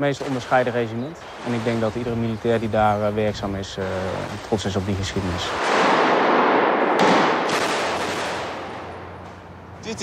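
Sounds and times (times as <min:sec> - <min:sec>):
rifle shot echoing: 0:05.5 - 0:08.9.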